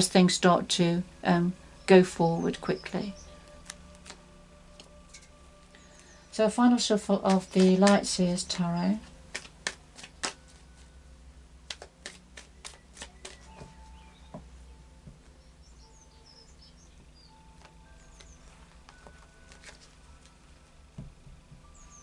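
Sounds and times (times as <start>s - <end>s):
cards being shuffled: 3.5s - 4.9s, 6.9s - 8.2s, 9.0s - 10.9s, 11.7s - 13.8s, 17.6s - 20.4s.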